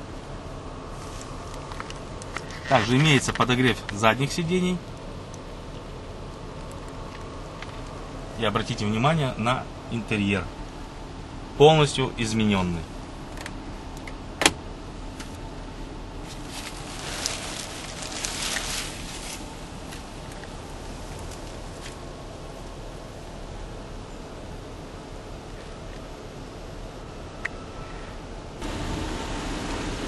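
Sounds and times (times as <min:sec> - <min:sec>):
low car cabin noise: 0:00.0 - 0:30.0
car door opening: 0:14.4 - 0:14.6.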